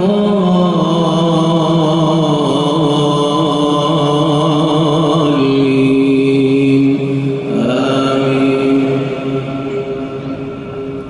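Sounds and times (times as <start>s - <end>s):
chanted recitation: 0.0s - 11.0s.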